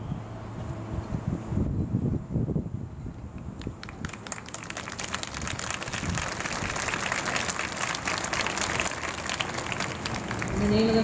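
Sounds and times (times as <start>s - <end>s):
large crowd applauding: 3.6s - 11.0s.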